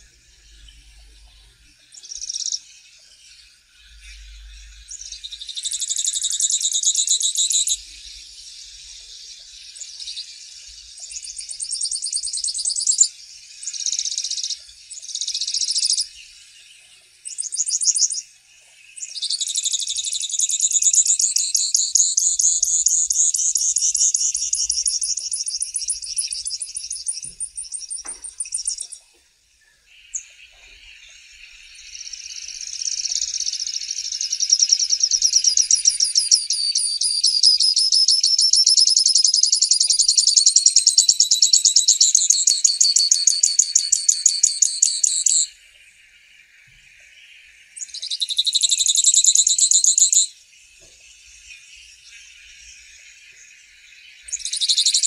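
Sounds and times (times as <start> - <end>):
finch singing trilled songs: 0.0 - 55.0.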